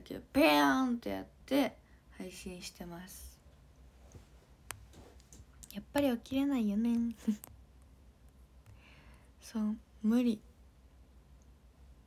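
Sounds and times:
woman talking: 0.0s - 3.4s, 5.6s - 7.5s, 9.4s - 10.5s.

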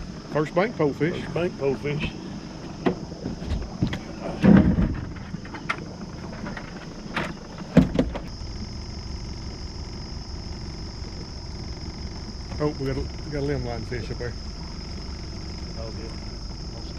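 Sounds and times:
electric trolling motor humming: 0.0s - 4.3s, 4.9s - 16.9s
knocks and thumps on boat: 2.0s - 8.4s.

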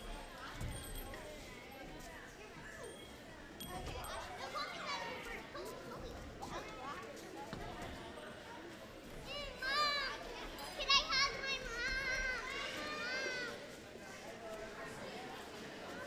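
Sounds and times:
young children chattering: 2.3s - 16.0s.

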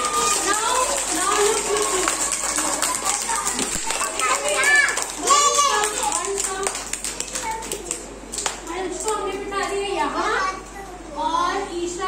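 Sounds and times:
hand claps: 0.0s - 9.2s
children chattering and calling out: 0.0s - 12.0s.

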